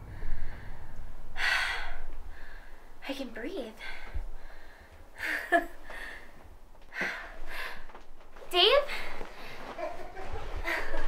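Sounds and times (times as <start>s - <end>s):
woman breathing: 0.0s - 8.2s, 8.8s - 9.8s
woman laughing softly: 9.4s - 11.0s.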